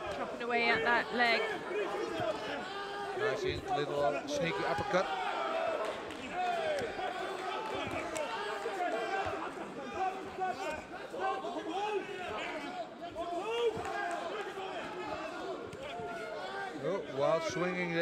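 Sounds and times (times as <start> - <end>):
crowd shouting: 0.0 - 17.9.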